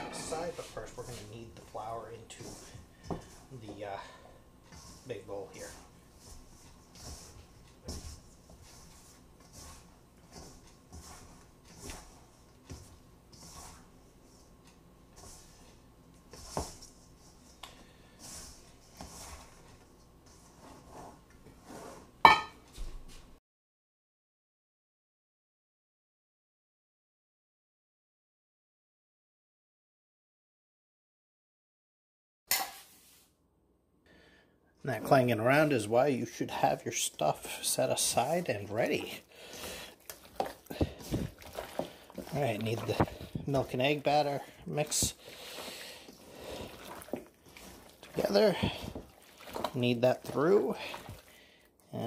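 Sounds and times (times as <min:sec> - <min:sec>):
metal bowl clanging: 0:00.0 - 0:00.8, 0:22.3 - 0:22.6
soft rustling of flour: 0:00.2 - 0:23.4, 0:34.8 - 0:52.0
wet squishing of chicken in batter: 0:35.9 - 0:52.0.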